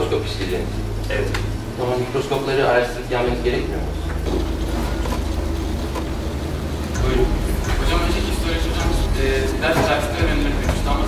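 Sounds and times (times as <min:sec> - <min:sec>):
low hum of lecture hall: 0:00.0 - 0:11.0.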